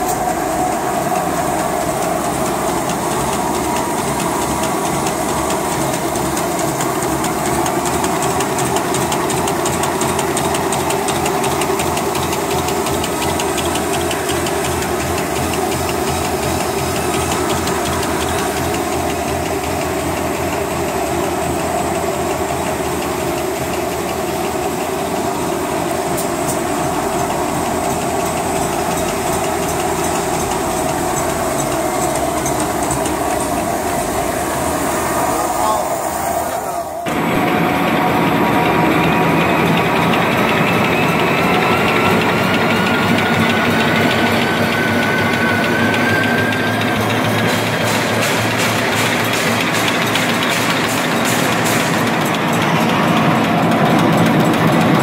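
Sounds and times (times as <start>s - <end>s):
machine fast mechanical clatter: 0.0s - 35.8s, 37.0s - 55.0s.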